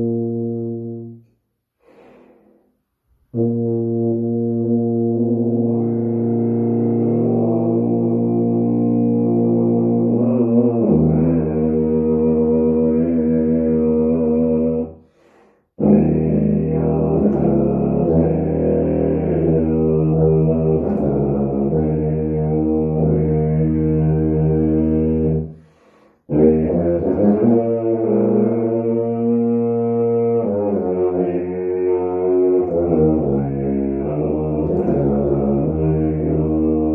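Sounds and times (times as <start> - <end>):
solo tuba playing: 0.0 - 2.3, 3.1 - 14.9, 15.8 - 25.7, 26.3 - 36.9.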